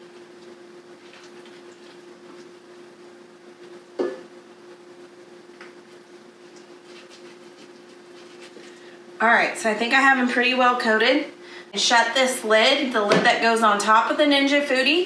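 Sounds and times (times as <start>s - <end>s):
steady low hum: 0.0s - 15.0s
brush dabbing wet sauce: 5.9s - 8.8s.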